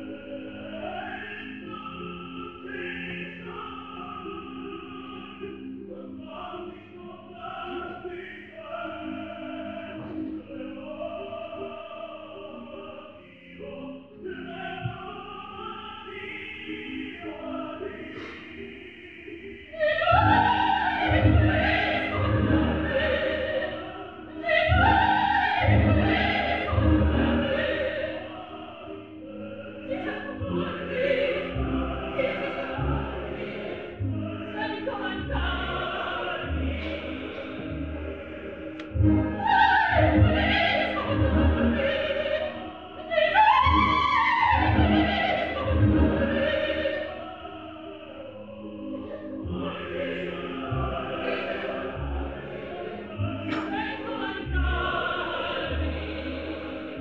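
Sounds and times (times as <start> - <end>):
opera singing voices: 0.0 - 57.0
low pulsing orchestral notes: 19.8 - 57.0
orchestra accompaniment: 29.9 - 47.0.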